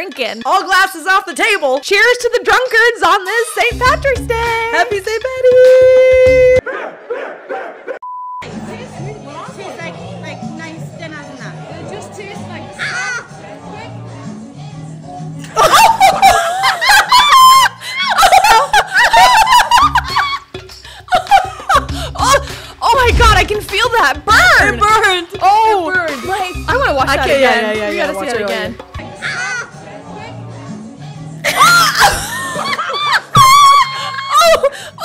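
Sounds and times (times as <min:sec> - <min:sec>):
background music: 0:00.0 - 0:07.3, 0:08.4 - 0:35.0
women laughing and shrieking: 0:15.6 - 0:20.5, 0:21.1 - 0:22.5, 0:31.4 - 0:35.0
women screaming: 0:16.6 - 0:20.4, 0:31.4 - 0:34.9.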